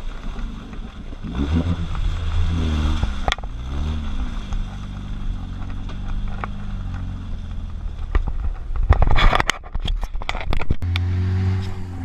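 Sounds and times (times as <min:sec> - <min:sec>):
engine revving: 0:00.3 - 0:08.2, 0:10.8 - 0:12.0.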